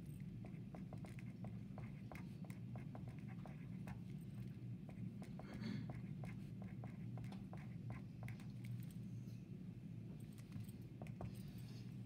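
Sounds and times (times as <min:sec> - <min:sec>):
steady low hum: 0:00.0 - 0:12.0
pen scratching on paper: 0:00.4 - 0:04.0, 0:04.9 - 0:08.6.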